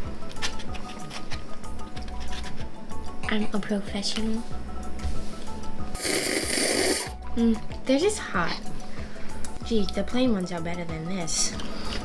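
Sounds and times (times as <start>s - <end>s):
quiet background music: 0.0s - 12.0s
breath rushing over hot noodles: 6.0s - 7.1s.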